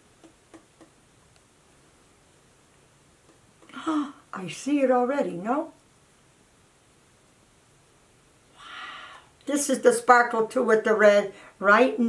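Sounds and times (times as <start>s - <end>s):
elderly woman breathing in: 8.6s - 9.4s.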